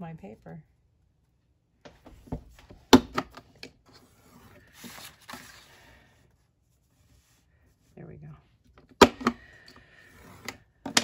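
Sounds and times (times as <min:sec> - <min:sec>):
paper sliding and rustling: 0:03.9 - 0:06.0.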